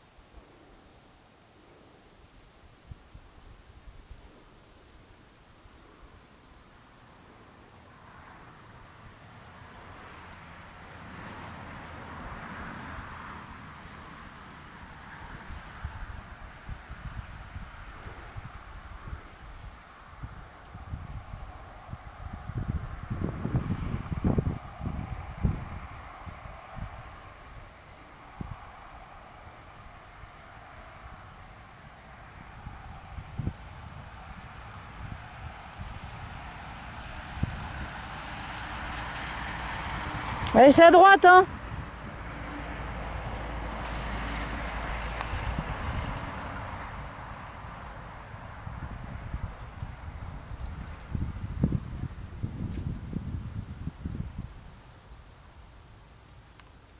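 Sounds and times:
faint steady hiss: 0:00.0 - 0:56.9
wind buffeting microphone: 0:15.2 - 0:56.0.

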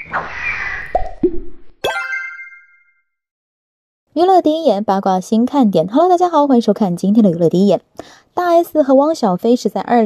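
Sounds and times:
cartoon swish: 0:00.0 - 0:02.8
upward-gliding bloops: 0:00.0 - 0:02.9.

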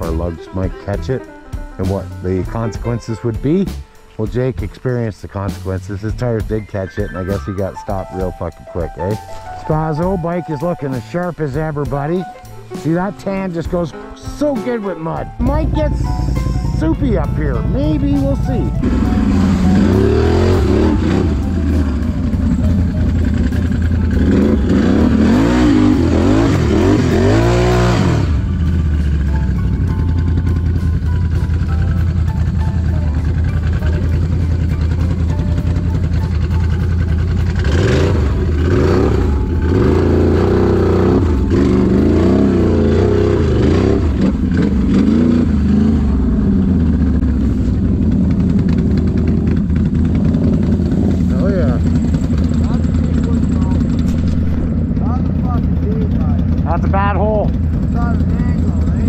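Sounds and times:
atv engine revving: 0:04.2 - 0:59.0.

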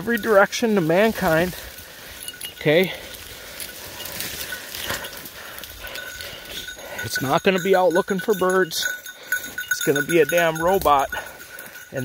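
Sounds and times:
footsteps through brush: 0:00.0 - 0:07.0, 0:10.7 - 0:12.0
leaves and twigs rustling: 0:00.0 - 0:12.0.

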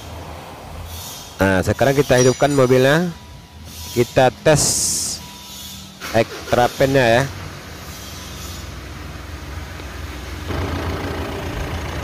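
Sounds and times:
diesel engine idling: 0:06.3 - 0:12.0.

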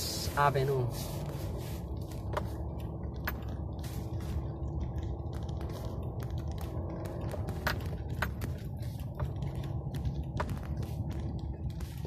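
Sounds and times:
car cabin low rumble: 0:00.0 - 0:12.0
faint steady hum: 0:00.0 - 0:12.0.

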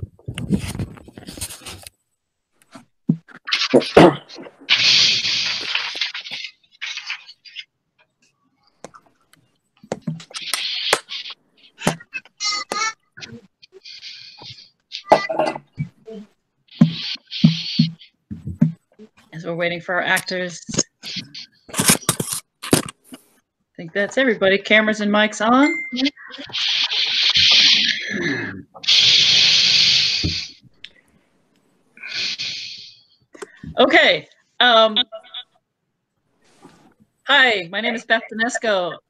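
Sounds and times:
microphone hiss: 0:00.0 - 0:07.6, 0:08.8 - 0:35.2
voice-like sound: 0:03.5 - 0:07.6, 0:23.9 - 0:30.6, 0:32.0 - 0:35.4.

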